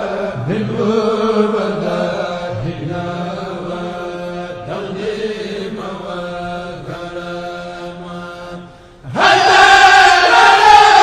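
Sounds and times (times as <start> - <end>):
devotional chanting: 0.0 - 11.0.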